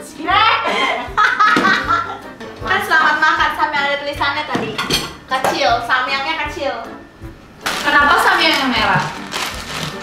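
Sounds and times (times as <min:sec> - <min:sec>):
dishes clinking: 0:04.5 - 0:05.5.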